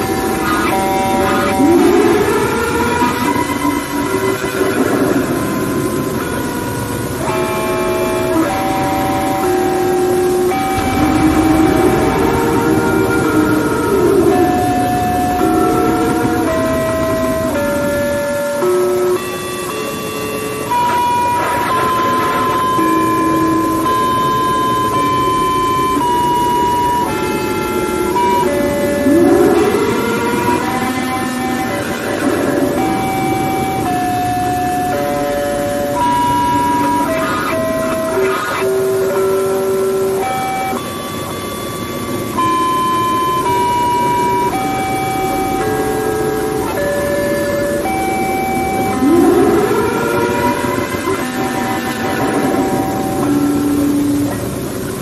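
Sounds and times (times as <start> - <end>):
distorted electronic tones: 0.0 - 55.0.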